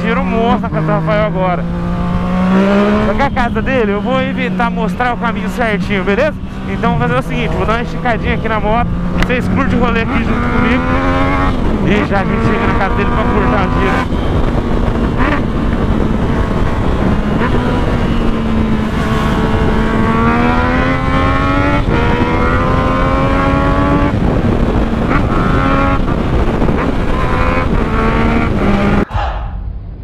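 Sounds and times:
motorcycle engine running hard: 0.0s - 29.0s.

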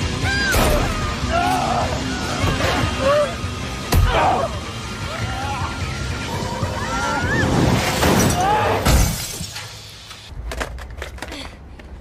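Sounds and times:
action film music: 0.0s - 8.0s
crash with glass shattering: 7.7s - 9.6s.

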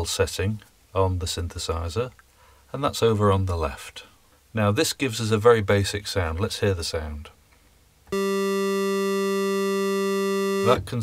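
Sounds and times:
synthesizer holding buzzy note: 8.2s - 10.9s.

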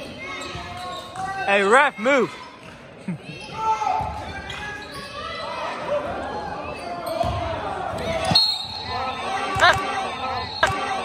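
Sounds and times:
crowd voices: 0.0s - 11.0s
sneakers squeaking on court: 0.2s - 1.5s, 3.4s - 5.5s.

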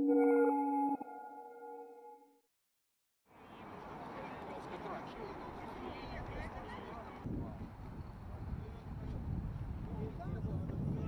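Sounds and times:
electronic logo chime: 0.0s - 2.2s.

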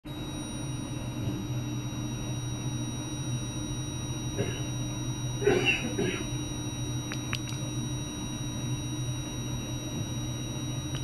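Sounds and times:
low steady hum: 0.1s - 11.0s.

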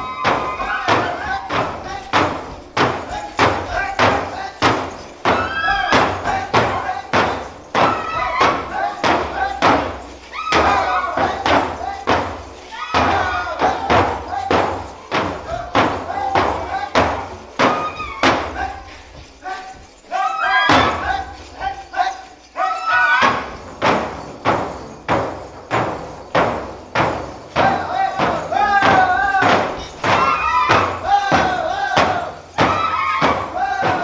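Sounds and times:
frame drums beating: 0.0s - 34.0s
group chanting: 27.6s - 34.0s.

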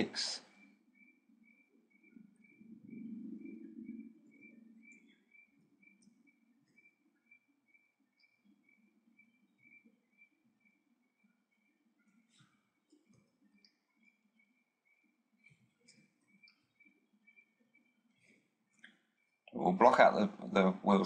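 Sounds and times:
faint pulsing high tone: 0.0s - 21.0s
low murmur: 19.5s - 21.0s.

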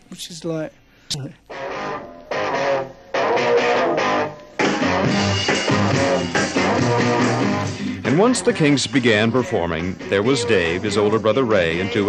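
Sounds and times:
bass guitar: 1.5s - 12.0s
electric guitar rock riff: 1.5s - 12.0s.

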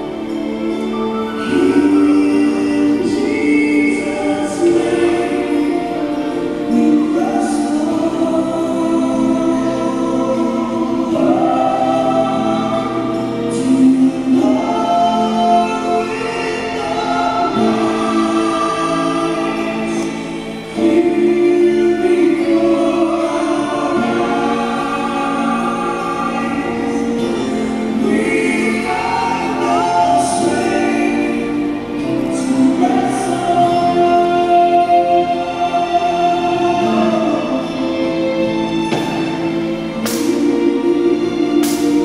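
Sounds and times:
choir singing: 0.0s - 42.0s.

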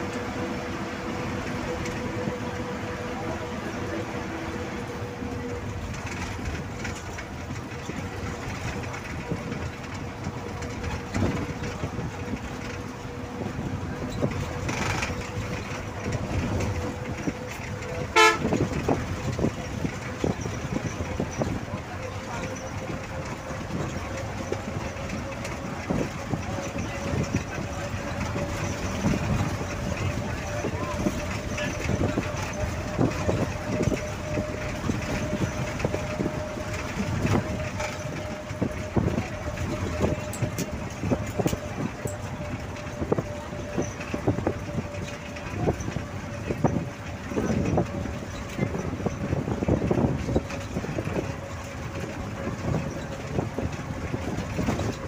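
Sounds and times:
constant hum: 0.0s - 55.0s
road and engine rumble: 0.0s - 55.0s.

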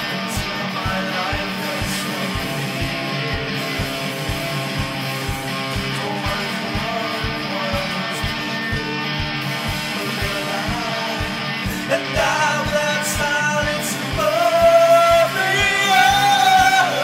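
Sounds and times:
layered electric guitars: 0.0s - 17.0s
steady low drum beat: 0.0s - 17.0s.

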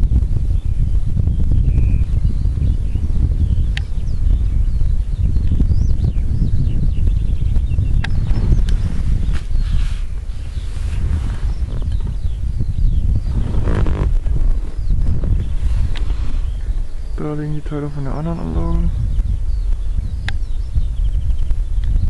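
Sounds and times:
wind buffeting microphone: 0.0s - 22.0s
faint bird chirps: 0.5s - 22.0s.

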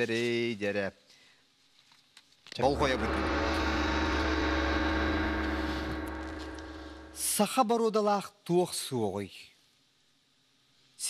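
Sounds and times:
deep hum: 2.6s - 7.4s
sustained synthesized chord: 2.6s - 7.4s.

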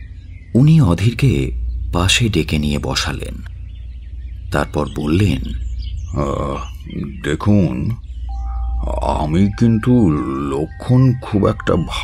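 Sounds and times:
low drone of background score: 0.0s - 12.0s
held tone: 8.3s - 12.0s.

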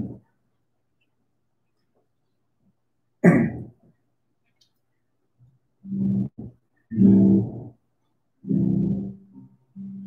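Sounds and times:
person clearing throat: 3.2s - 3.8s.

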